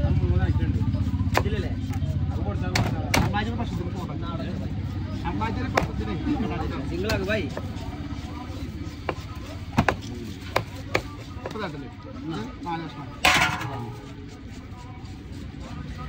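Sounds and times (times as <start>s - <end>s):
traffic: 0.0s - 16.0s
knife chopping fish on wood: 1.2s - 3.6s, 5.6s - 6.1s, 7.0s - 8.1s, 8.8s - 11.7s.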